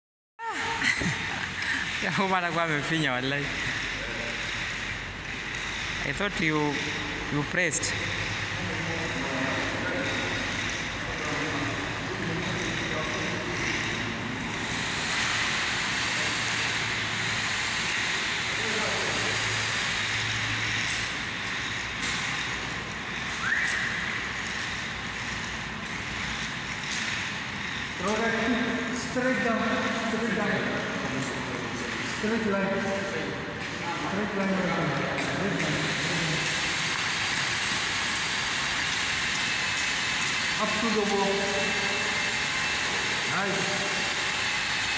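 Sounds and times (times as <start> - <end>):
person laughing: 0.4 - 2.0
roller spreading wet coating: 0.5 - 44.9.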